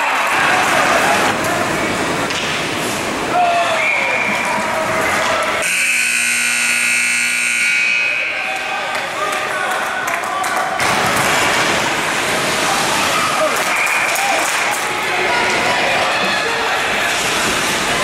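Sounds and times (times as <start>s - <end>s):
voices: 3.2s - 11.2s, 11.9s - 18.0s
scoreboard horn buzzing: 5.6s - 8.5s.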